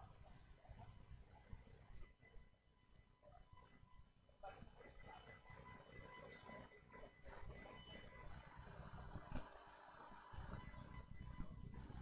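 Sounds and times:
faint electronic whine: 0.0s - 12.0s.

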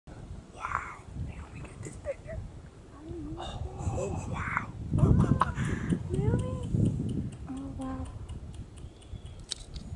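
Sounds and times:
low rumble on microphone: 0.1s - 9.9s
person whispering: 0.5s - 1.8s.

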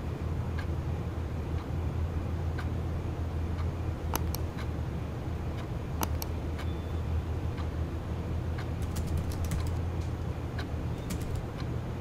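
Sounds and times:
steady low hum: 0.0s - 12.0s
keyboard keys clicking: 8.8s - 10.2s, 10.9s - 11.7s.

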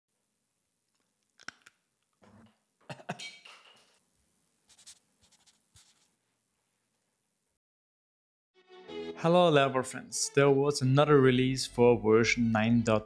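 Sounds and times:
scratchy noise: 4.7s - 6.2s.

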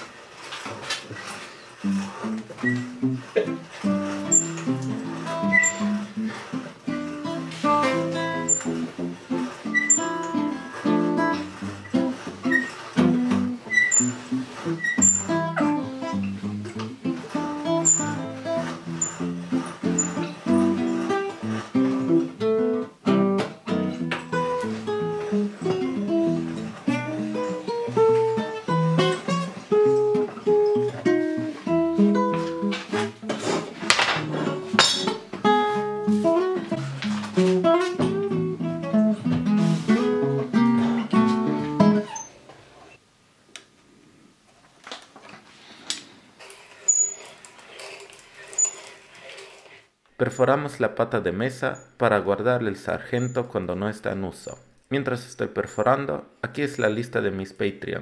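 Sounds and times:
acoustic guitar: 0.0s - 43.0s.

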